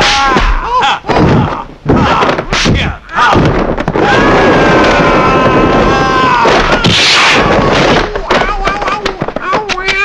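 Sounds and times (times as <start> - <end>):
dense noise: 0.0 - 10.0.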